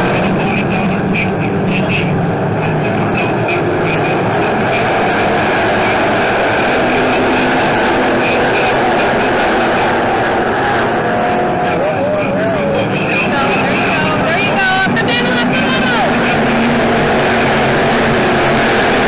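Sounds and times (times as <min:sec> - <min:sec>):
racing car engines roaring: 0:00.0 - 0:19.0.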